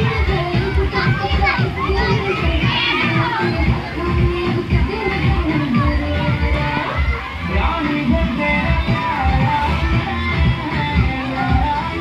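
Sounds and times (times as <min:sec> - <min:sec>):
children shouting at play: 0:00.0 - 0:12.0
music playing: 0:00.0 - 0:12.0.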